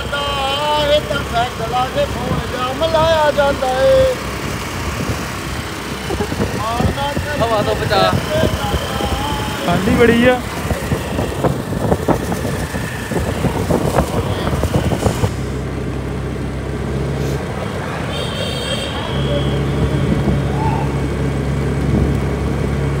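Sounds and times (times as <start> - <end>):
motor scooter engine humming: 0.0 - 23.0.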